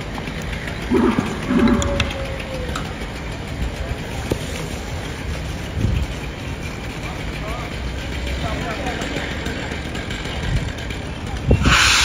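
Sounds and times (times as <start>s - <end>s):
engine idling: 0.0s - 12.0s
street noise: 0.0s - 12.0s
faint voices: 0.8s - 11.8s.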